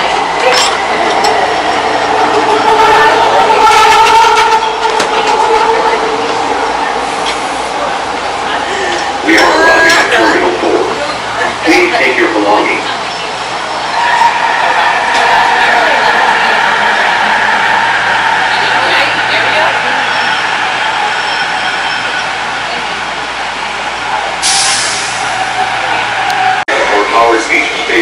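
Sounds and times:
train ride rumble: 0:00.0 - 0:28.0.

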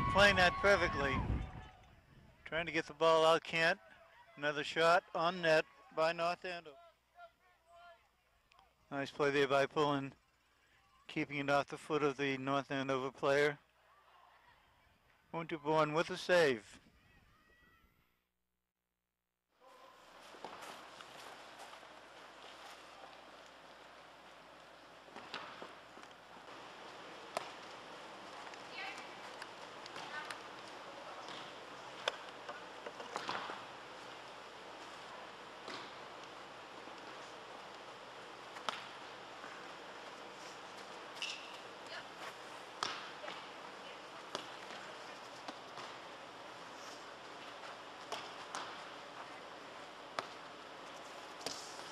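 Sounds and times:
indoor sports hall noise: 0:00.0 - 0:18.2, 0:19.6 - 0:51.9.

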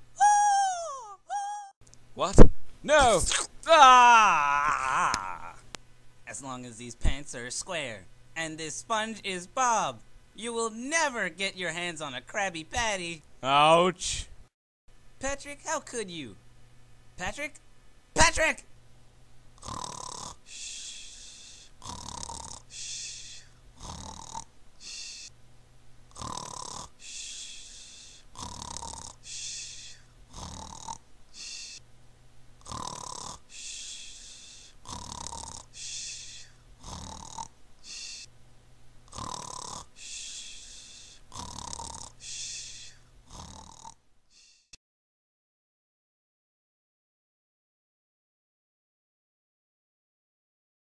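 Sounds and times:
snoring: 0:19.6 - 0:25.3, 0:26.1 - 0:31.8, 0:32.6 - 0:38.3, 0:39.1 - 0:44.8.

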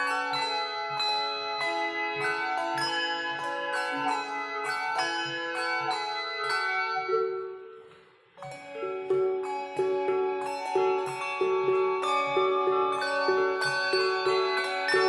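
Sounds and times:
handbell choir ringing: 0:00.0 - 0:07.8, 0:08.4 - 0:15.0.

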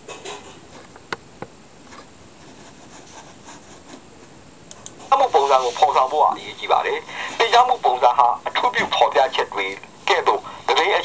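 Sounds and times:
faint steady hiss: 0:00.0 - 0:11.0
person speaking loudly: 0:05.1 - 0:11.0.

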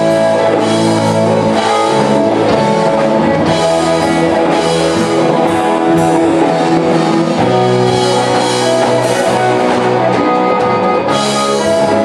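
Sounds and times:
blues-funk band playing: 0:00.0 - 0:12.0.

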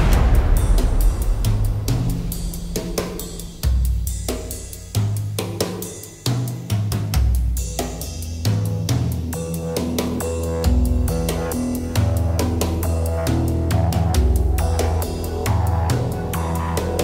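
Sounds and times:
low bass notes: 0:00.0 - 0:05.4, 0:08.4 - 0:17.0
drum kit playing: 0:00.0 - 0:17.0.

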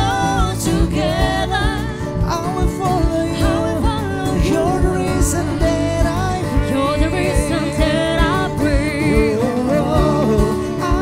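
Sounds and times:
guitar chords: 0:00.0 - 0:11.0
person singing: 0:00.0 - 0:11.0
steady low beat: 0:00.0 - 0:11.0.

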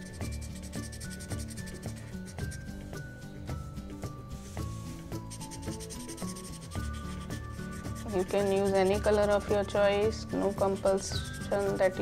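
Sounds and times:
marker scratching on cardboard: 0:00.0 - 0:02.9, 0:04.4 - 0:12.0
soft background music: 0:00.0 - 0:12.0.

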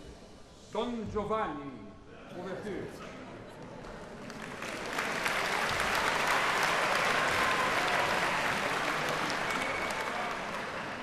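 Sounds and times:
audience applauding: 0:04.0 - 0:11.0.

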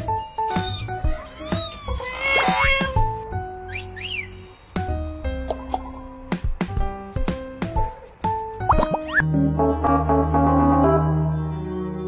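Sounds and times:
plucked background music: 0:00.0 - 0:12.0
cat meowing: 0:00.4 - 0:03.2.

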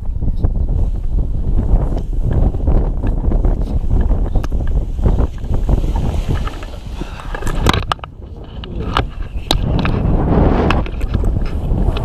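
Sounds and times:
wind rumbling on microphone: 0:00.0 - 0:12.0
clicks and rustles: 0:01.9 - 0:12.0.

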